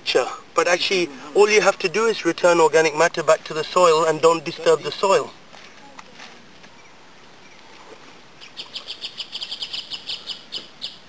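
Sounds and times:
rapid high chirps: 8.4s - 11.0s.

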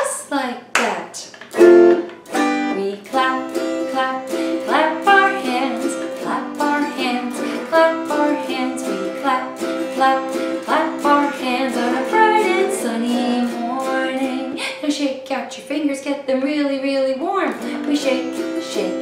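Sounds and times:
autoharp strummed: 1.5s - 14.6s, 17.5s - 19.0s
woman singing: 2.4s - 19.0s.

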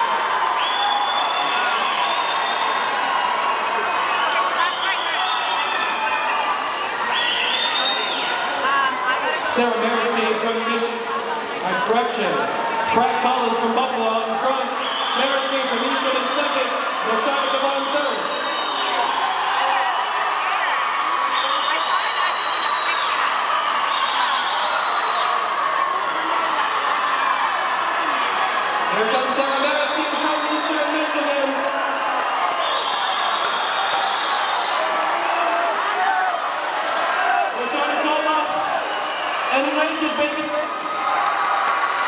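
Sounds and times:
crowd cheering and shouting: 0.0s - 42.0s.

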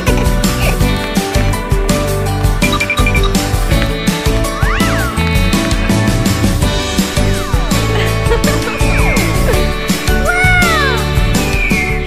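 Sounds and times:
background music with steady beat: 0.0s - 12.0s
cartoon rising and falling tone: 6.8s - 11.8s.

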